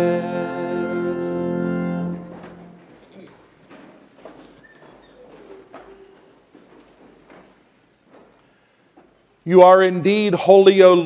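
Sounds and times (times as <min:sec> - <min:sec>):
congregation shuffling and knocks: 0:00.0 - 0:09.4.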